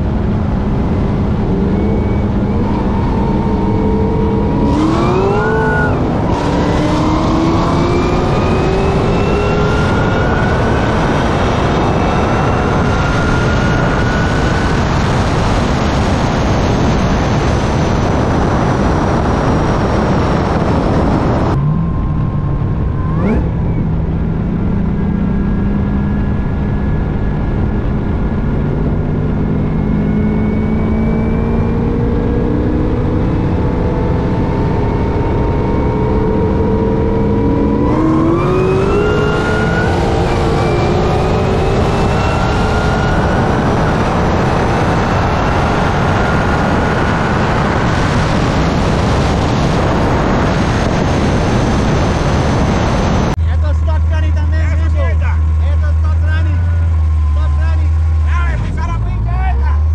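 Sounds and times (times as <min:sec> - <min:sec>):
wind rush: 0:00.0 - 0:53.4
car engine at full throttle: 0:00.0 - 0:59.9
car engine cruising: 0:00.0 - 0:59.9.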